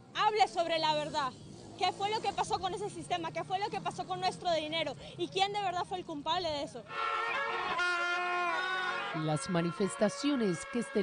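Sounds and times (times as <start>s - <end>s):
plastic horns blowing: 6.9s - 11.0s.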